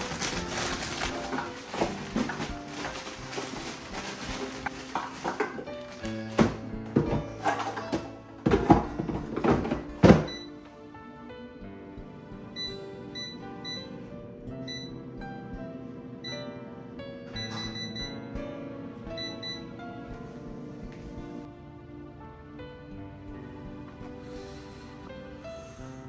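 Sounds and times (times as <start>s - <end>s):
plastic bag rustling: 0.0s - 8.0s
background music: 0.0s - 26.0s.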